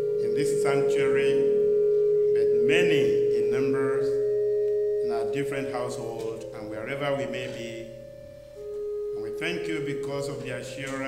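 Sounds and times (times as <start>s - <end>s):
sustained instrumental chord: 0.0s - 11.0s
man speaking: 0.2s - 1.6s, 2.3s - 4.2s, 5.0s - 8.0s, 9.2s - 11.0s.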